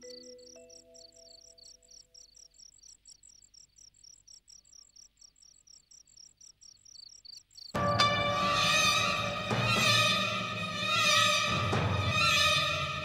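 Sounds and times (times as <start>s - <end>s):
crickets chirping: 0.0s - 13.0s
orchestral music sting: 7.8s - 13.0s.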